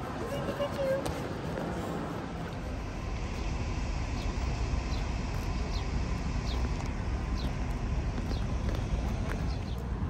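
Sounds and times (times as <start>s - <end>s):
distant traffic: 0.0s - 10.0s
wind rumble: 0.0s - 10.0s.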